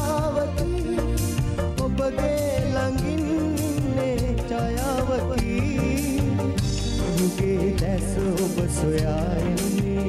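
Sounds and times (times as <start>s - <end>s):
backing band with drums and bass: 0.0s - 10.0s
man singing pop song: 0.0s - 10.0s.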